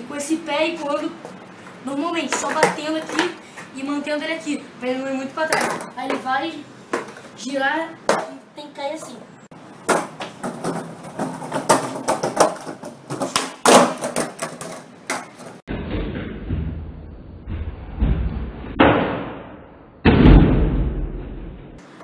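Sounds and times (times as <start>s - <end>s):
skateboard clattering on tiles: 2.3s - 3.4s, 9.8s - 15.6s
skateboard thuds: 2.3s - 3.4s, 9.8s - 15.6s
skateboard rumbling: 9.9s - 15.6s.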